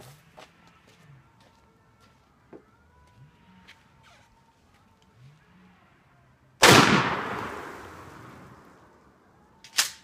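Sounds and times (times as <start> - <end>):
gunshot with echo: 6.6 - 8.5.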